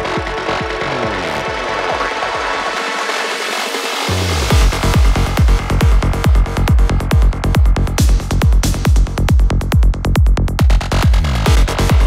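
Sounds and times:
kick and bass pulse: 0.0 - 3.2, 4.0 - 12.0.

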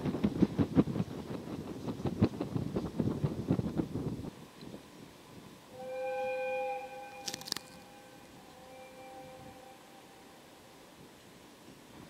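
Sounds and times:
locomotive horn blasts: 5.7 - 10.6.

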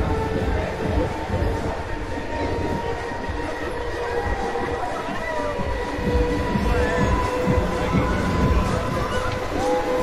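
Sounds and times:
ferris wheel whine: 0.0 - 10.0.

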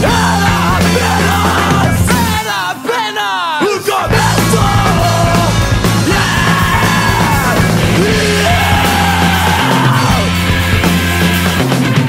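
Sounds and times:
bass guitar: 0.0 - 2.6, 4.1 - 12.0
distorted guitar: 0.0 - 2.8, 4.1 - 12.0
yelled vocals: 0.0 - 11.7
drums: 0.0 - 12.0.

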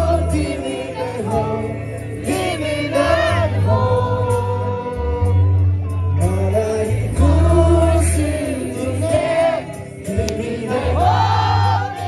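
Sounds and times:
crowd singing along: 0.0 - 12.0
live music with heavy bass: 0.0 - 12.0.

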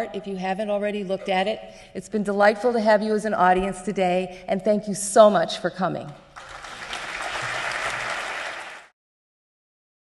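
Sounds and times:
audience applauding: 6.4 - 9.0.

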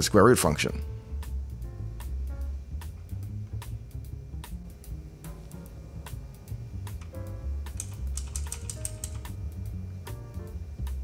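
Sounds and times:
background music with bass line: 0.0 - 11.0
keyboard typing: 7.0 - 9.4.

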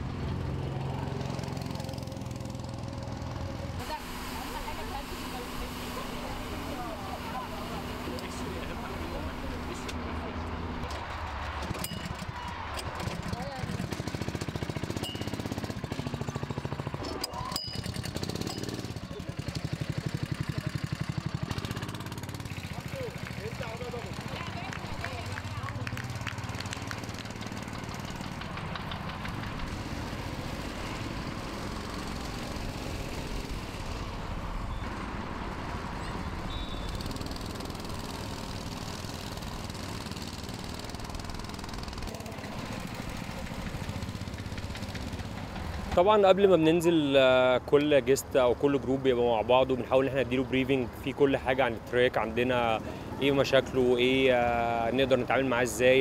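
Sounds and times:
go-kart engines buzzing: 0.0 - 56.0.

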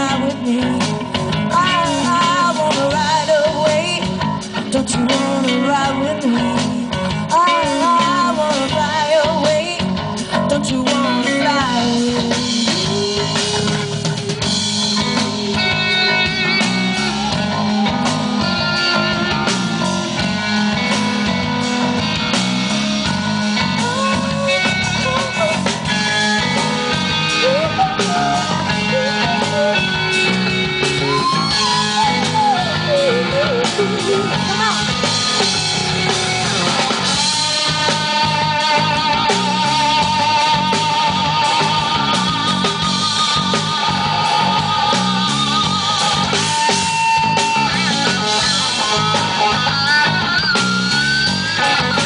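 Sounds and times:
bending guitar lead line: 0.0 - 52.0
live rock band playing: 0.0 - 52.0.

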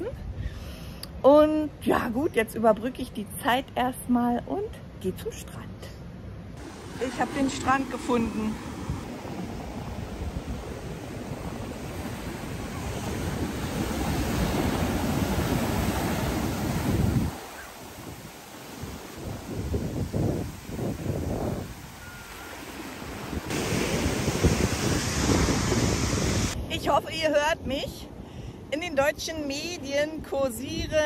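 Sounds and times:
ocean surf breaking: 6.6 - 26.7
wind buffeting microphone: 6.6 - 27.2.

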